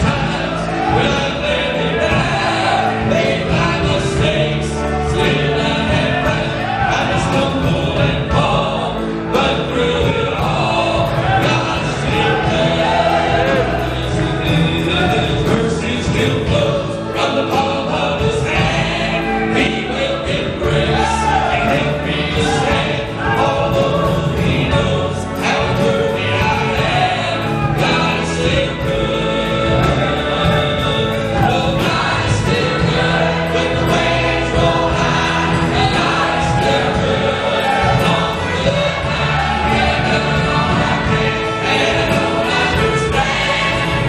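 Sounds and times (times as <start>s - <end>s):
choir singing gospel: 0.0s - 44.0s
men singing lead: 0.0s - 44.0s.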